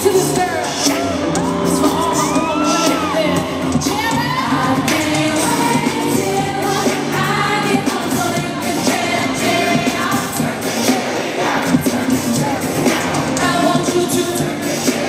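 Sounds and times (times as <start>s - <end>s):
pop band music: 0.0s - 15.0s
woman singing into microphone: 1.7s - 9.3s.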